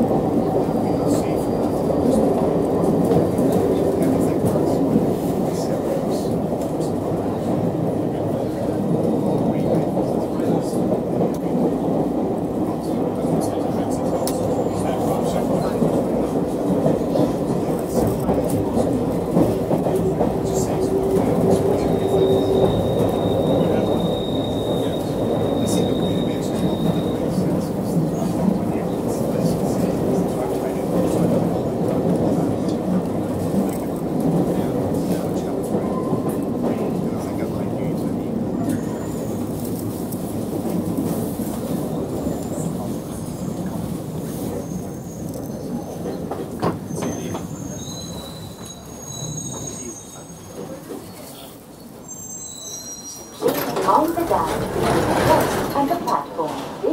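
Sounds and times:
train wheels rumbling on track: 0.0 - 56.9.

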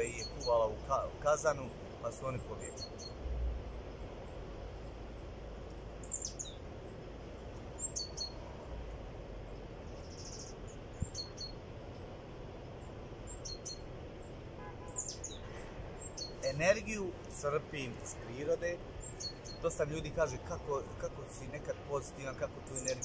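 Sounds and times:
birds chirping: 0.0 - 23.0.

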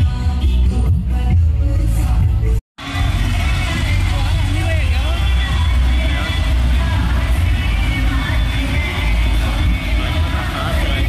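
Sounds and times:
slow-moving trucks rumbling: 2.8 - 11.0.

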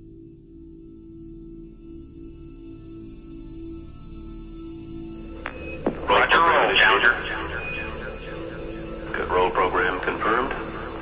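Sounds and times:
faint steady high tone: 0.0 - 11.0
radio-like voice commentary: 6.0 - 8.3, 9.1 - 10.8.

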